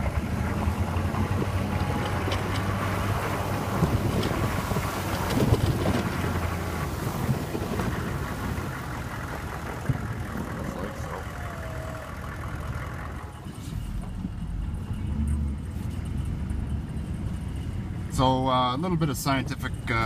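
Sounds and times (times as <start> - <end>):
snow plow blade scraping snow: 0.0 - 11.2
truck engine running: 0.0 - 20.0.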